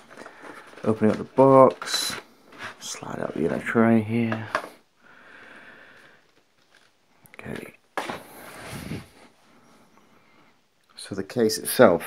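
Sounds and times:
plastic packaging rustling: 0.0s - 4.7s, 5.9s - 9.3s.

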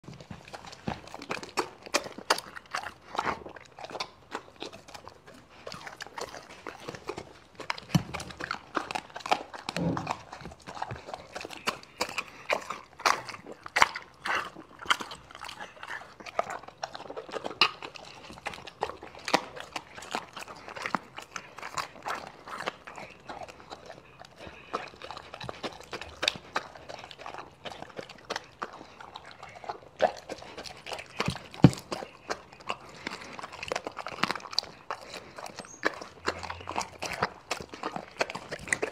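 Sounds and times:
dog chewing meat: 0.0s - 38.9s.

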